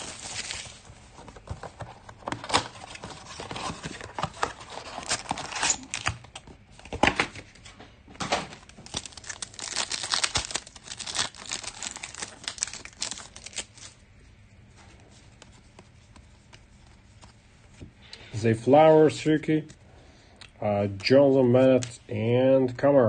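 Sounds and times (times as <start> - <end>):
foil packs crackling and tearing: 8.6 - 14.0.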